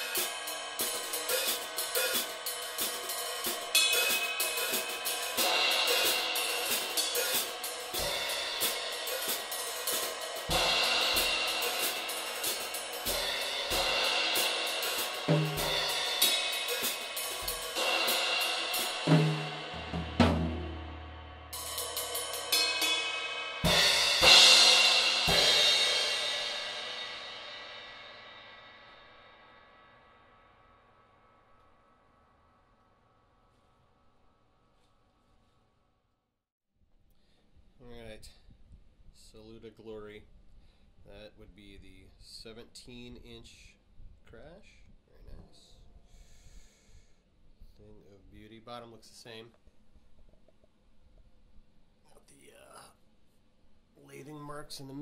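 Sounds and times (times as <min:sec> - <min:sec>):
tom fill: 0:00.0 - 0:23.0
drum kit groove: 0:00.0 - 0:28.3
cymbal crash ringing: 0:00.0 - 0:31.2.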